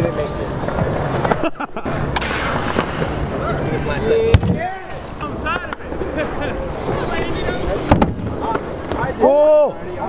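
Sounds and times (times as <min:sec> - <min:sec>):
bike tyres rolling on concrete: 0:00.0 - 0:10.0
people talking: 0:03.3 - 0:10.0.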